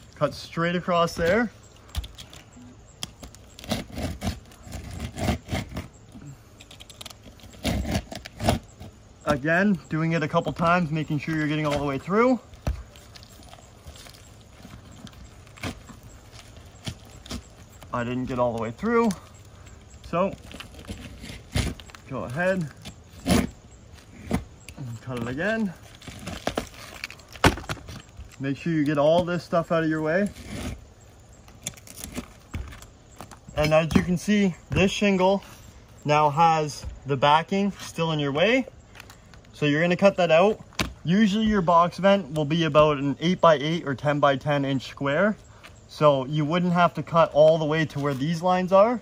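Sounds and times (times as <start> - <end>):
knife scraping shingles: 1.2 - 9.4, 12.8 - 28.4, 29.6 - 30.8.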